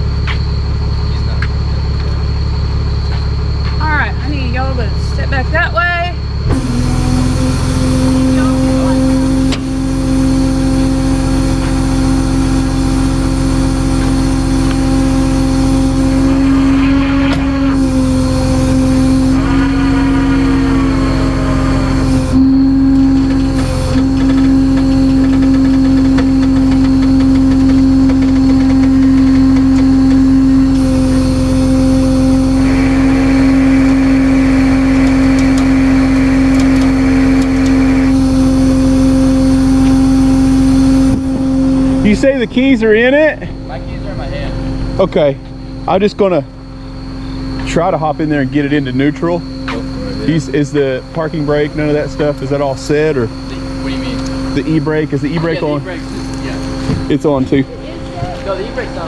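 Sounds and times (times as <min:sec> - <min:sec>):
truck engine droning whine: 0:00.0 - 0:59.0.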